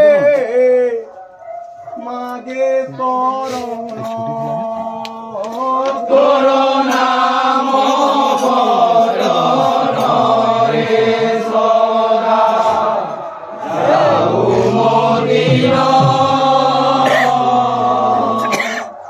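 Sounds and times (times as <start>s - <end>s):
men singing a chant: 0.0s - 1.1s, 2.0s - 18.9s.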